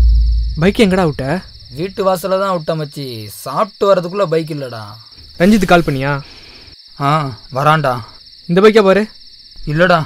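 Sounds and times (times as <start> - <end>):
crickets chirring: 0.0 - 10.0.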